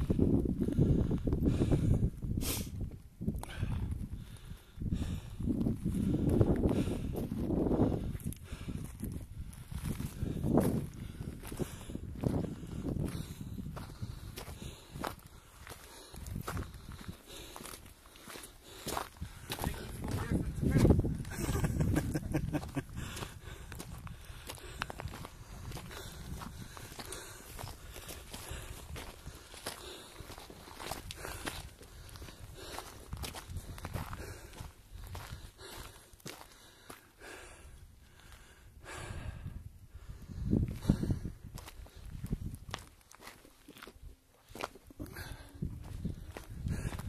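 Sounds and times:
footsteps on gravel: 5.6s - 37.4s, 40.6s - 47.0s.

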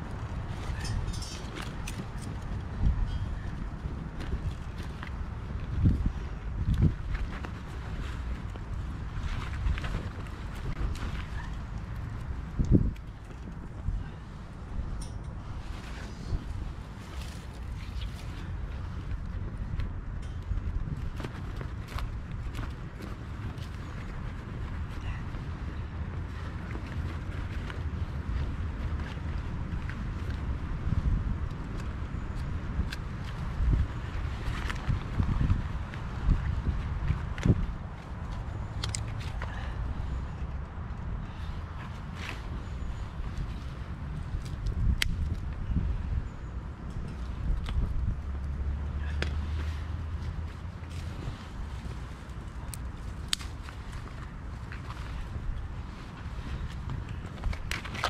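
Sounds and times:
fire crackling and snapping: 0.0s - 13.9s, 25.7s - 39.4s, 43.0s - 45.8s, 46.7s - 48.6s, 50.3s - 58.0s
wind buffeting microphone: 0.0s - 58.0s.

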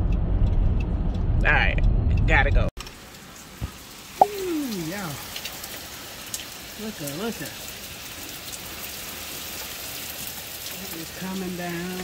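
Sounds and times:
steady rain falling: 2.8s - 12.0s.

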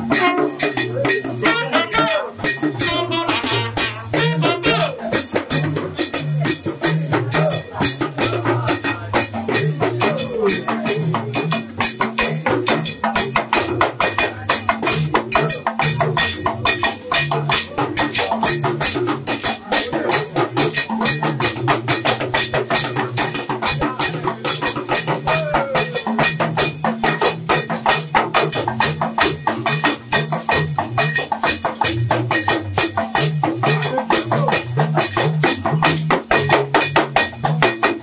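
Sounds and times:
talking drums playing: 0.0s - 38.0s.

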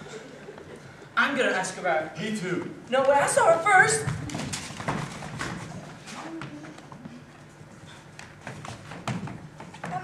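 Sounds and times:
footsteps on wooden stage: 2.6s - 10.0s.

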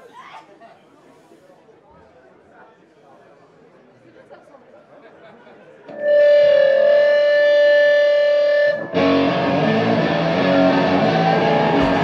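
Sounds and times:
distorted electric guitar: 5.9s - 12.0s
drum hits: 11.6s - 12.0s.

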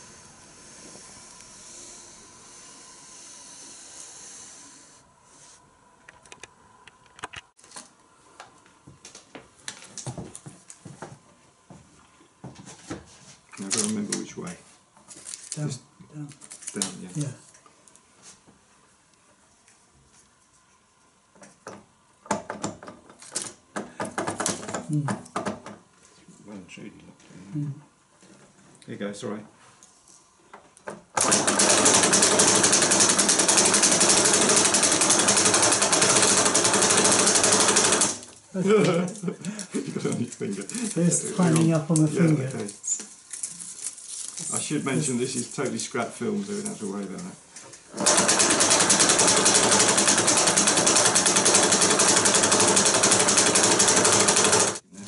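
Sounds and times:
film projector clattering: 31.2s - 38.3s, 47.9s - 54.8s
film clicks and rustles: 41.6s - 44.7s.

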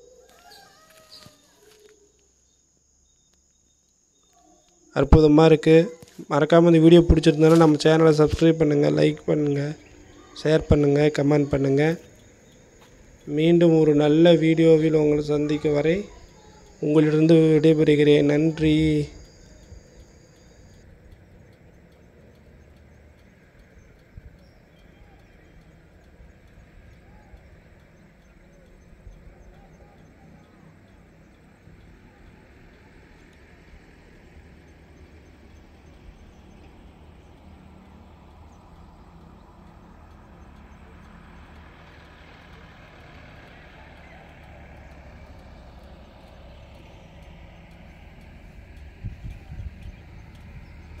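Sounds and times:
low outdoor rumble with hiss: 0.0s - 51.0s
wind buffeting microphone: 48.9s - 51.0s.

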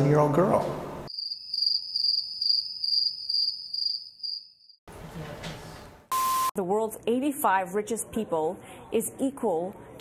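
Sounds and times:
crickets chirping: 1.1s - 4.8s.

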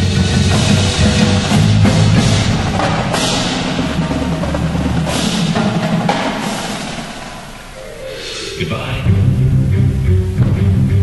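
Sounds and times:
drums and percussion: 0.0s - 9.2s
bright high sound swells: 7.0s - 9.6s.

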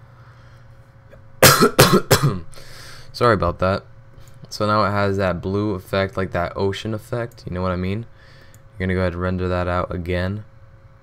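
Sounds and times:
low steady hum: 0.0s - 11.0s
man coughing hard: 1.4s - 2.5s.

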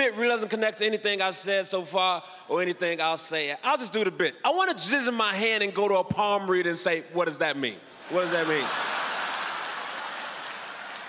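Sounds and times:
audience applauding: 8.3s - 11.0s.

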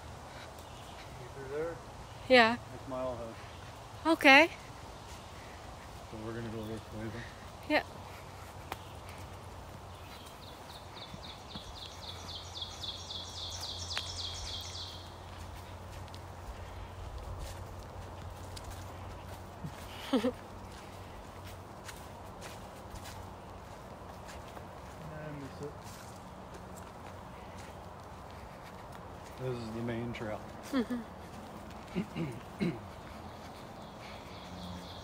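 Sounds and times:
footsteps on dirt trail: 0.0s - 35.0s
songbird singing quick notes: 10.0s - 15.1s
person laughing: 19.8s - 20.4s, 30.6s - 31.2s, 31.8s - 33.2s.

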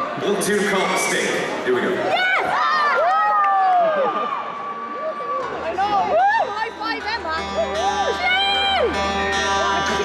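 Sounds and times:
crowd: 0.0s - 10.0s.

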